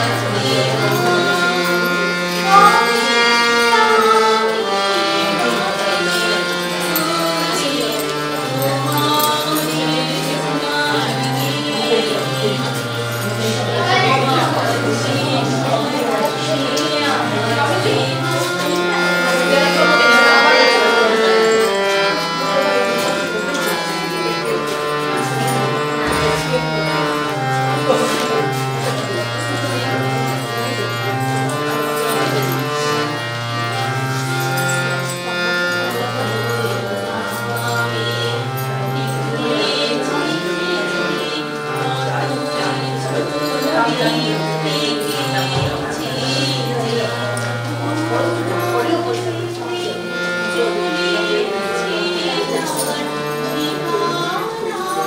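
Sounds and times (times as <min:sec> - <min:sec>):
held accompaniment notes: 0:00.0 - 0:55.0
person singing devotional song: 0:00.0 - 0:55.0.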